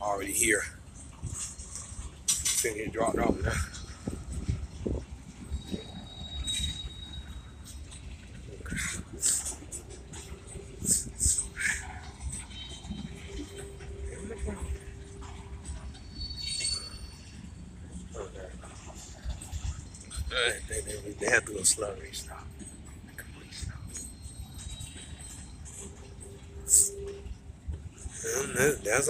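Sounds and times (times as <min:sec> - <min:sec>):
freight train rumbling: 0:00.0 - 0:29.0
high squeaks: 0:05.5 - 0:18.0.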